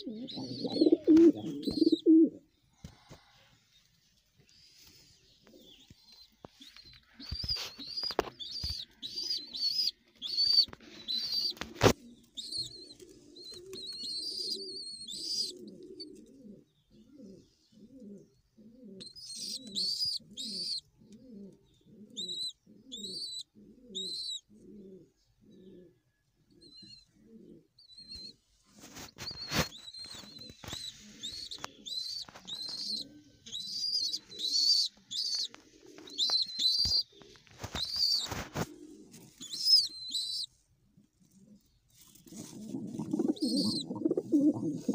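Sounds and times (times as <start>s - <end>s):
high chirping calls: 0.0s - 2.4s, 5.5s - 11.6s, 19.1s - 20.8s, 29.0s - 38.4s, 39.4s - 40.5s, 42.4s - 44.9s
pigeons cooing: 0.0s - 3.1s, 4.8s - 44.9s.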